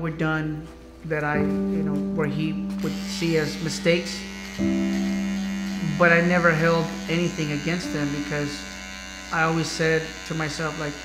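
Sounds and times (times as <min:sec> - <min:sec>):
electric hair clippers buzzing: 0:02.8 - 0:11.0.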